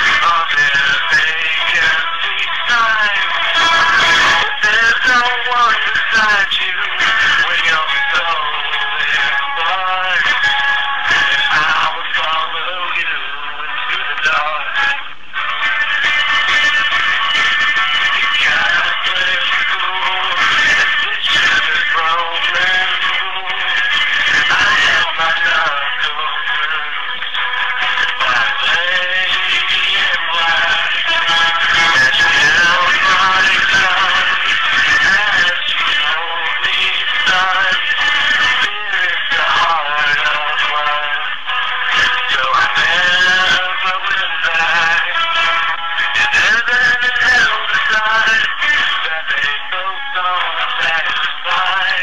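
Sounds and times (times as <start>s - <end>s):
man singing: 0.0s - 52.0s
music: 0.0s - 52.0s.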